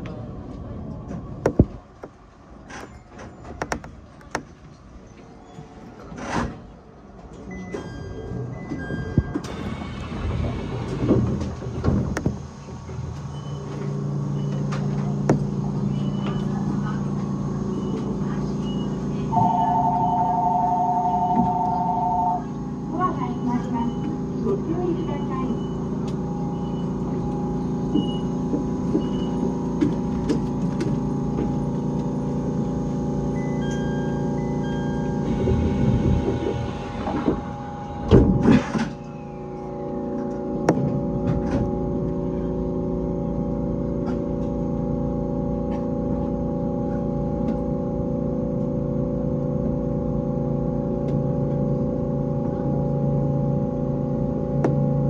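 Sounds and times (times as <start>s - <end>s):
electrical hum: 10.0s - 55.0s.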